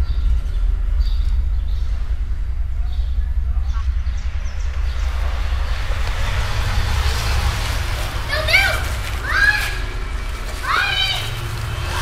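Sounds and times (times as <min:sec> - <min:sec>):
street noise low rumble: 0:00.0 - 0:12.0.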